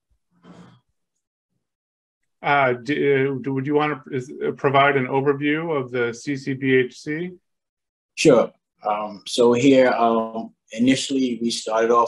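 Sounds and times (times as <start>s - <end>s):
man speaking: 2.4s - 7.4s, 8.2s - 12.0s.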